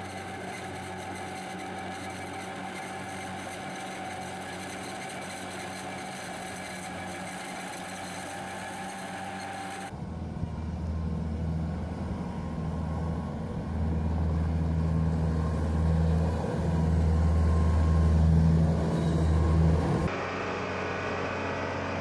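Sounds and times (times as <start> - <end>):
loader engine rumble: 0.0 - 20.1
tractor engine running: 0.0 - 20.1
haymaking implement whine: 0.0 - 22.0.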